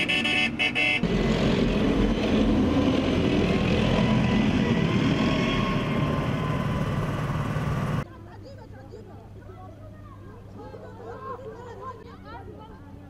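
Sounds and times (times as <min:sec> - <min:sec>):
road noise: 0:00.0 - 0:08.1
armoured vehicle engine rumble: 0:01.0 - 0:08.1.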